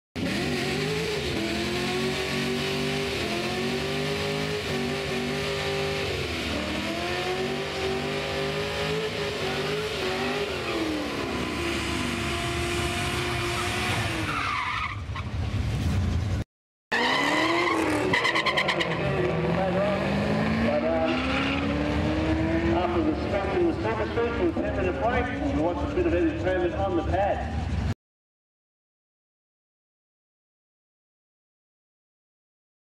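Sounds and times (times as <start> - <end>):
car engine revving: 0.2 - 14.5, 15.4 - 27.9
car accelerating: 0.2 - 27.9
tyre squeal: 13.3 - 15.3.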